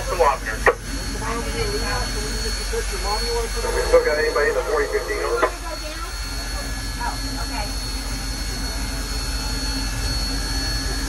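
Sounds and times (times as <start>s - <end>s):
steam locomotive hiss and hum: 0.0s - 11.0s
thin high whine: 0.0s - 11.0s.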